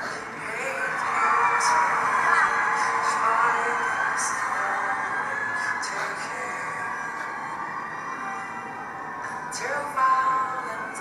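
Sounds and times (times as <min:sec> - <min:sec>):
audience cheering: 0:00.3 - 0:11.0.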